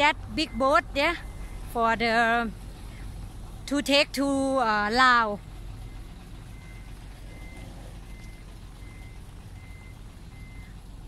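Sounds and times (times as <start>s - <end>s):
truck reversing alarm beeping: 0.0s - 2.4s, 3.1s - 11.0s
steady low rumble: 0.0s - 11.0s.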